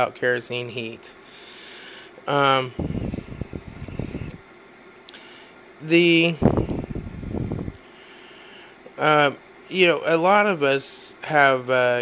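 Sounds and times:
low rumbling buffeting on microphone: 0:02.6 - 0:04.4, 0:06.1 - 0:07.8.

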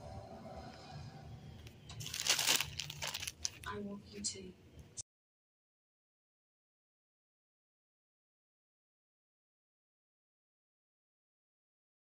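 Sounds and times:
plastic packaging crinkling: 0:01.9 - 0:03.8.

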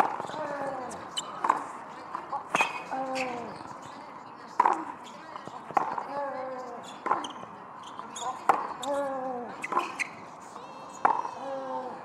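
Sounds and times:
tennis ball struck by racket: 0:00.0 - 0:03.4, 0:04.5 - 0:07.4, 0:08.4 - 0:09.0, 0:09.6 - 0:10.1, 0:11.0 - 0:11.4.

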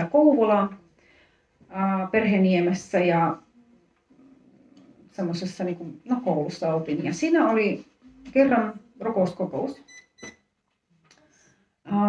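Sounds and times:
woman speaking: 0:00.0 - 0:01.0, 0:01.6 - 0:03.8, 0:05.1 - 0:09.9.

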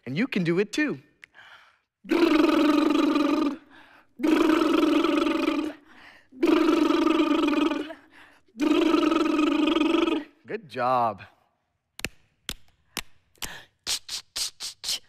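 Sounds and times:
vocal face-washing sound effect: 0:02.1 - 0:05.8, 0:06.4 - 0:10.4.

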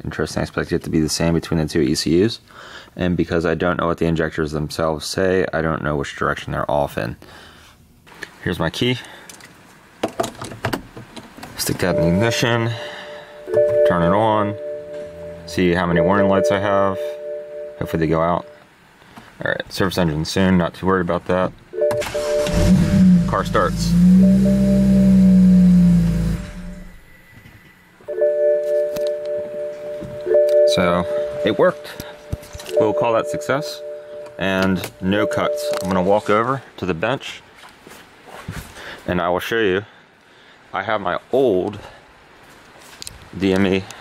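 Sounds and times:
steady held music tones: 0:11.6 - 0:18.6, 0:21.0 - 0:36.6
car engine revving: 0:22.0 - 0:27.2.

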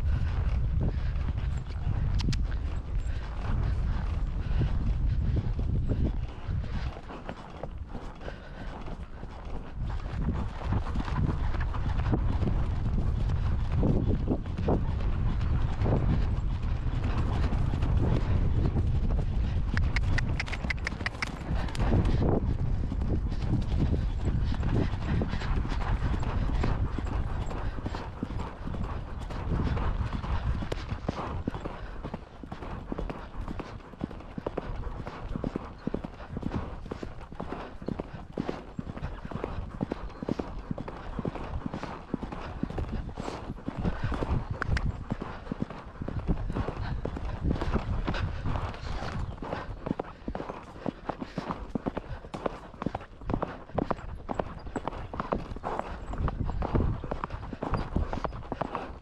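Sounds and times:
horse hoofbeats on grass and dirt: 0:00.0 - 0:59.0.

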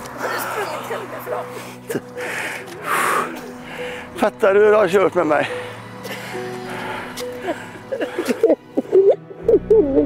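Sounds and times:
man panting heavily: 0:01.5 - 0:04.2, 0:05.4 - 0:08.7.

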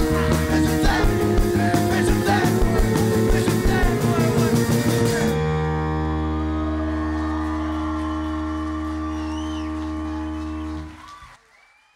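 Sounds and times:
electric guitar and bass chord: 0:00.0 - 0:11.0
faint gliding whistles: 0:07.6 - 0:11.9.

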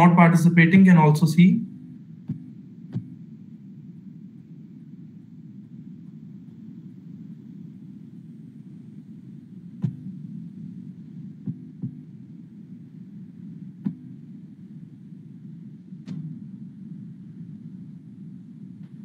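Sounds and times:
low background hum: 0:00.0 - 0:19.0.

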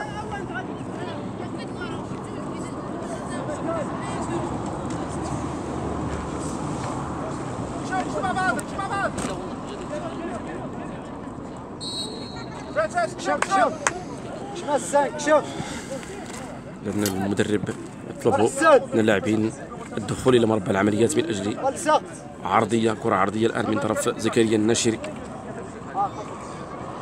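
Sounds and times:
outdoor background noise: 0:00.0 - 0:27.0
people shouting outdoors: 0:11.8 - 0:16.0.

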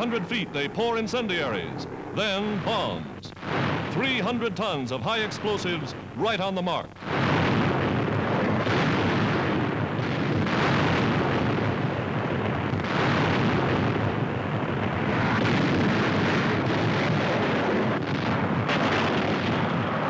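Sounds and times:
rumbling roar of explosions: 0:00.0 - 0:20.0
sharp blasts: 0:00.0 - 0:20.0.

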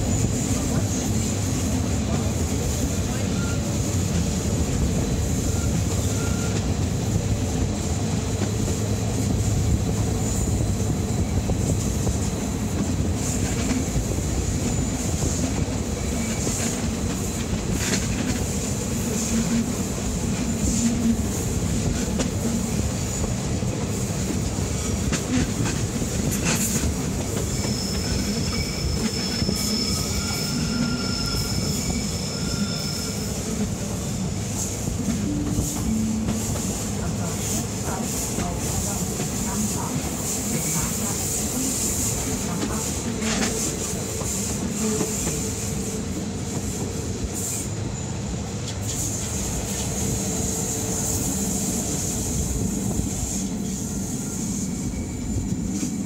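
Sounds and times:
train rolling rumble: 0:00.0 - 0:56.0
high wheel squeal: 0:03.1 - 0:03.9, 0:05.4 - 0:06.7, 0:26.4 - 0:34.3, 0:53.3 - 0:55.9.

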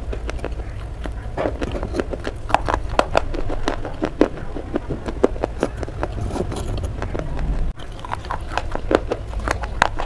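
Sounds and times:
clay being bitten and chewed: 0:00.0 - 0:10.0.

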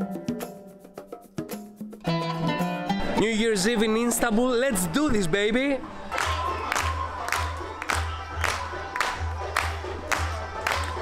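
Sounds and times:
upbeat dance music: 0:03.2 - 0:11.0
crowd clapping along: 0:06.0 - 0:11.0.

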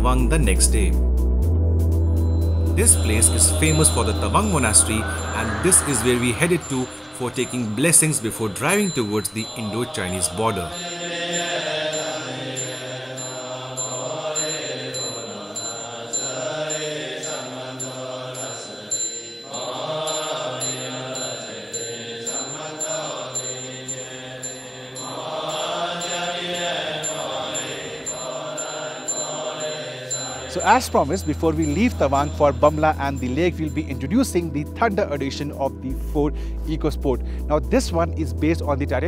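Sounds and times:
steady low drone: 0:01.0 - 0:09.6
chanted mantra: 0:02.8 - 0:34.2.

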